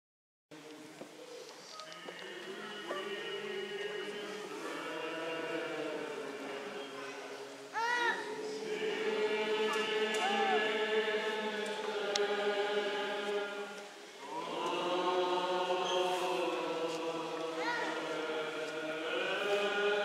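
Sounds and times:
group chanting a hymn: 1.7 - 20.0.

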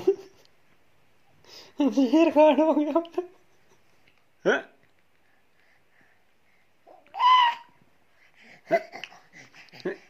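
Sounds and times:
high-pitched ooh call: 7.1 - 7.7.

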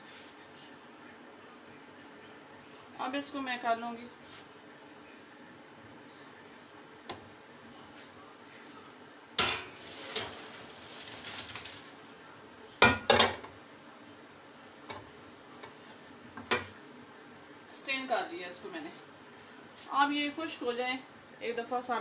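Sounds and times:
water pouring into colander: 9.7 - 12.0.

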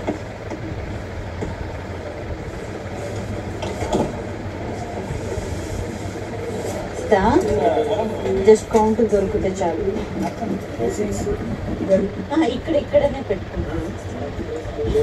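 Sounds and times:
low background rumble: 0.0 - 15.0
faint voices: 1.4 - 15.0.

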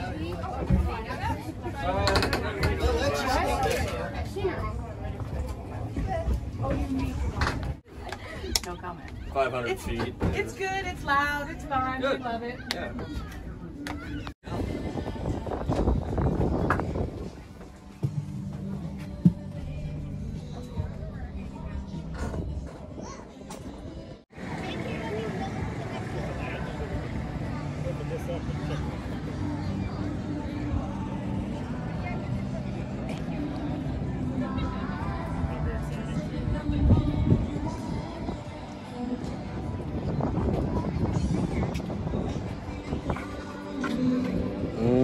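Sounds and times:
faint voices: 0.0 - 45.0
background music: 13.6 - 45.0.

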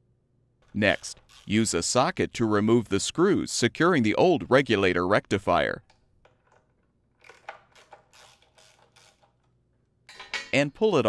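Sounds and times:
socket wrench ratcheting clicks: 7.2 - 9.5.

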